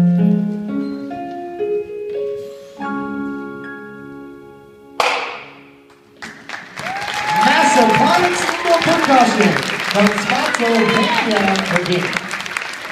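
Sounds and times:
mallet keyboard chords: 0.0 - 5.9
crowd cheering and applause: 6.2 - 12.9.

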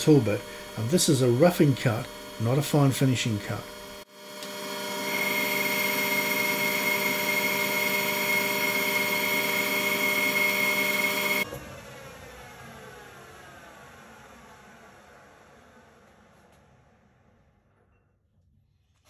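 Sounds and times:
lathe gear whine: 0.0 - 15.1.

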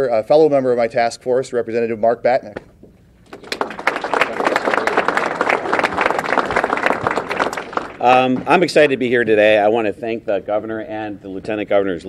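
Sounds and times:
audience applauding: 3.3 - 8.4.

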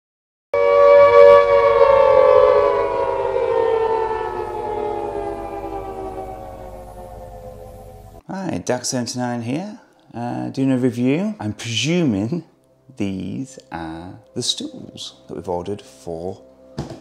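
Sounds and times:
synthesized tone gliding down: 0.6 - 8.2.

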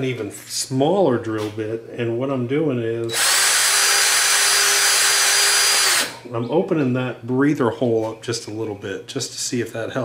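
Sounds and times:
cordless drill motor whine: 3.1 - 6.2.

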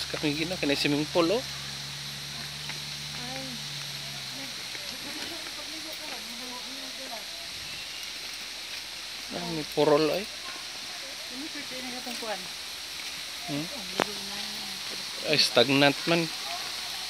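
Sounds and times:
low hum: 0.0 - 9.6
steady outdoor hiss: 0.0 - 17.0.

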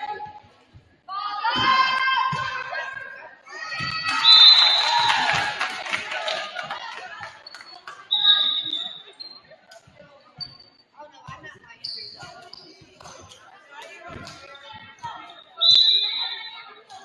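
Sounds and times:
referee's whistle: 4.1 - 5.2, 8.1 - 9.1, 15.3 - 16.7
sneaker squeaks on gym floor: 7.4 - 17.0.

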